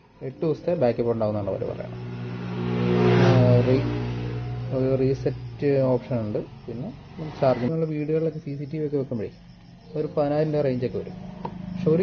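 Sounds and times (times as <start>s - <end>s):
vehicle engine passing: 0.0s - 9.3s, 9.9s - 12.0s.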